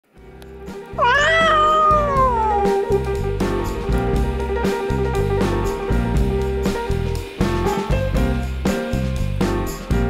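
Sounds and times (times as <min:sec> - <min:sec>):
background music with bass: 0:00.1 - 0:10.0
cat meowing: 0:01.0 - 0:03.1.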